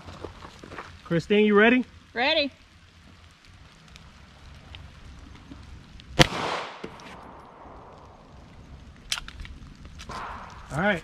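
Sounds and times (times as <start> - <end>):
pistol shot with echo: 6.2 - 7.9.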